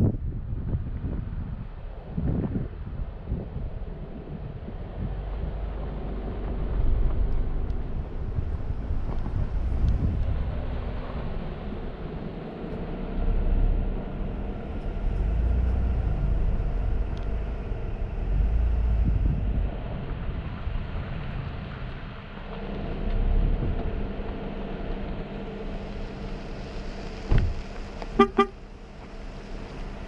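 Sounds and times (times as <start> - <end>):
wind buffeting microphone: 0.0 - 22.5, 27.0 - 27.7
vehicle engine and tyre hum: 0.0 - 30.0.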